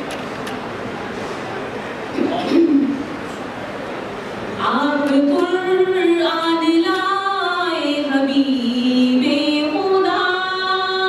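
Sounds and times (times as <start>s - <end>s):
woman singing into a microphone: 4.6s - 11.0s.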